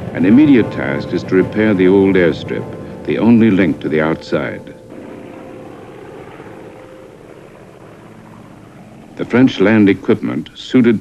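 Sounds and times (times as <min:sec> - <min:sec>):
propeller aircraft engines droning: 0:00.0 - 0:11.0.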